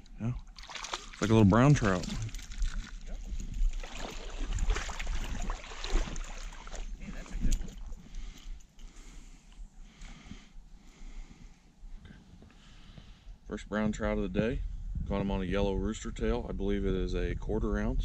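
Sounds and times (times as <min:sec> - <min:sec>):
fish splashing in water: 0:00.5 - 0:01.3, 0:03.8 - 0:06.9.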